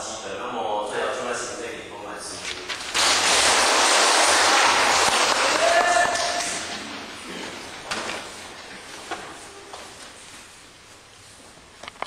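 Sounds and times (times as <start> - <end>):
audience applauding: 3.0 - 8.9.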